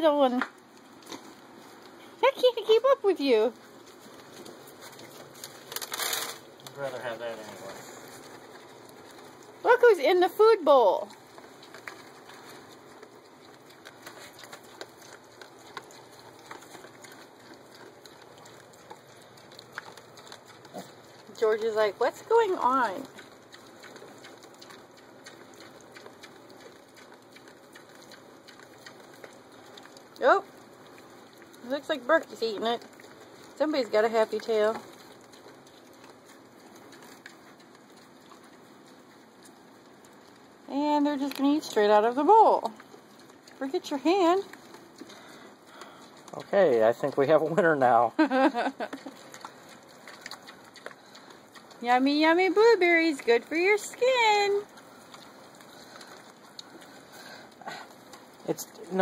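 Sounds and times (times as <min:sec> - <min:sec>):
piglets rustling in straw: 0:03.1 - 0:59.0.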